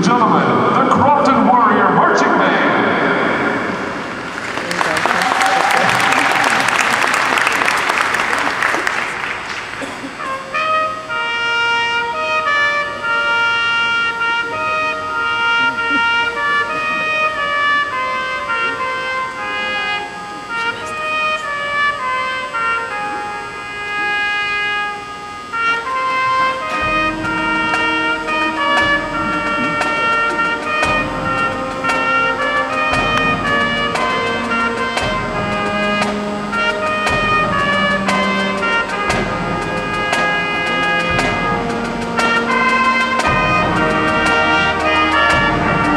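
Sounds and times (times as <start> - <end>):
marching band horns playing chords: 0.0 - 45.9
crowd applause: 3.8 - 10.6, 26.2 - 45.9.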